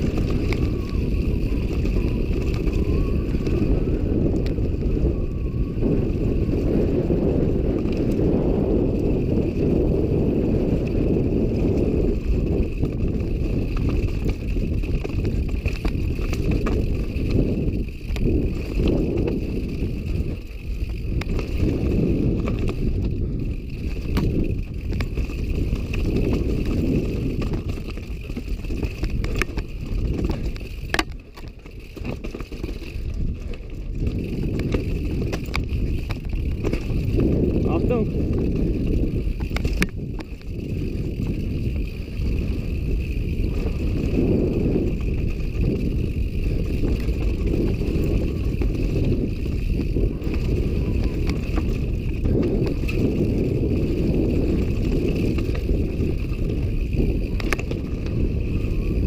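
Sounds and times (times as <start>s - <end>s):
bike trail rumble: 0.0s - 59.0s
wind buffeting microphone: 0.0s - 59.0s
bike clacking on rocks: 38.2s - 41.4s.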